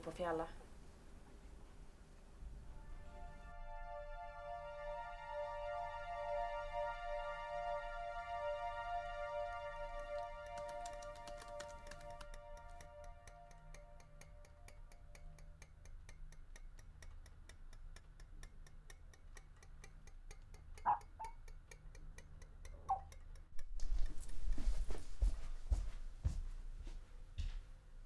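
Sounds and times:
clock ticking quickly: 12.2s - 24.6s.

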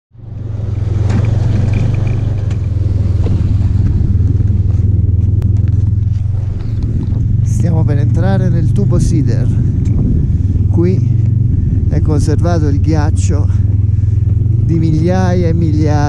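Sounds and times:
snowmobile engine running: 0.2s - 16.0s
person speaking: 7.4s - 9.6s, 11.9s - 13.8s, 14.6s - 16.0s.

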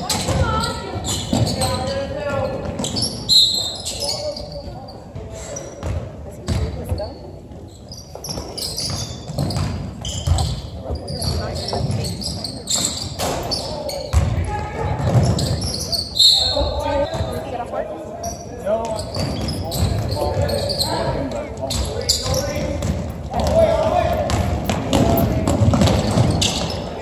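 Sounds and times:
basketball bouncing on hardwood floor: 8.9s - 10.6s, 22.8s - 26.7s.

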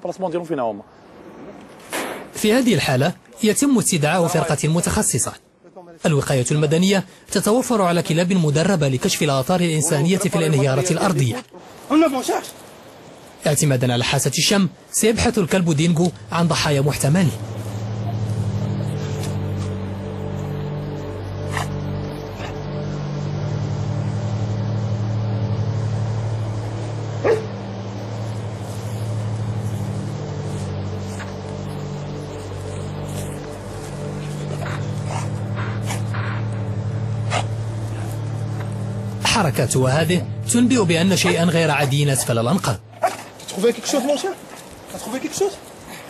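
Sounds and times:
steady low hum: 16.1s - 43.0s
dog barking: 27.2s - 27.5s, 43.0s - 43.3s
dog yipping and barking: 27.2s - 27.5s.

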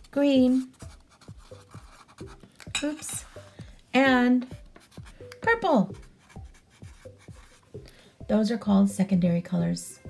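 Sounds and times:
pen writing on paper: 0.4s - 2.4s, 5.9s - 7.8s.

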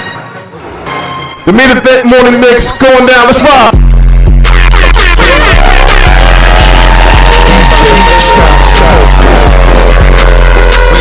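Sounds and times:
hip-hop dj mix: 1.4s - 11.0s.

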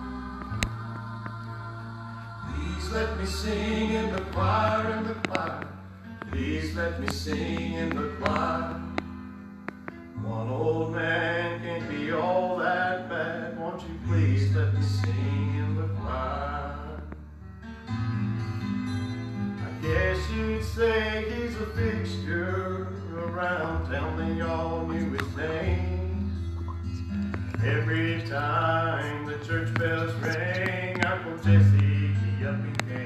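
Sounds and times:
church choir singing gospel: 0.0s - 9.0s, 10.3s - 17.1s.

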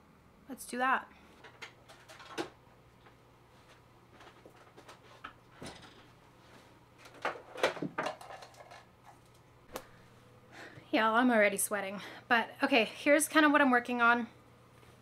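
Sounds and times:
objects handled on a desk: 1.4s - 9.4s.

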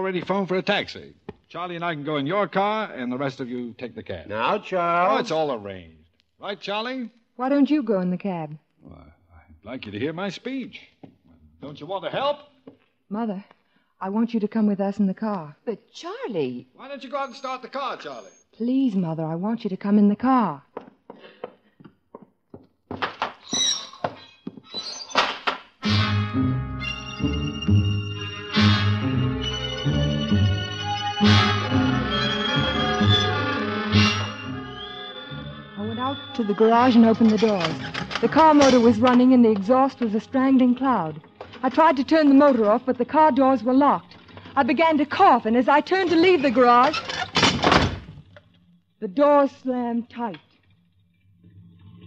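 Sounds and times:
knocks and thunks: 22.5s - 23.4s
brief high squeak: 23.4s - 25.2s
dramatic music with low notes: 25.8s - 43.4s
garage door slamming shut: 37.6s - 39.1s, 46.9s - 48.2s.

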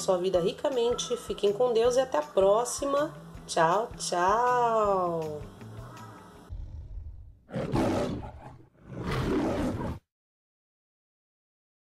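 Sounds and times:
lion roaring: 6.5s - 10.0s.

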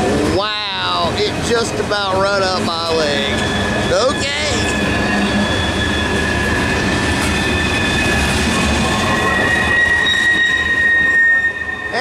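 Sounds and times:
train wheels rumbling on rails: 0.0s - 12.0s
wheels squealing: 0.2s - 12.0s.

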